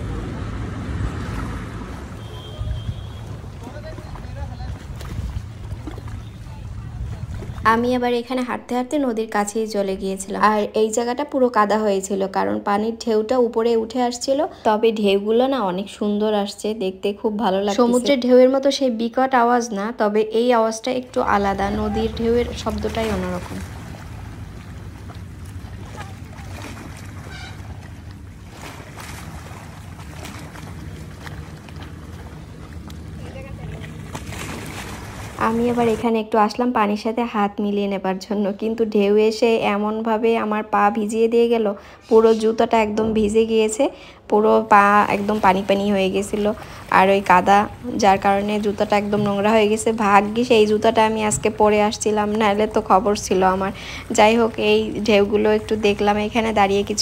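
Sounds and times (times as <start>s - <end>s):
wind buffeting microphone: 0.0s - 8.3s, 42.7s - 43.8s
river waves washing: 0.0s - 10.6s, 21.0s - 36.2s, 41.8s - 57.0s.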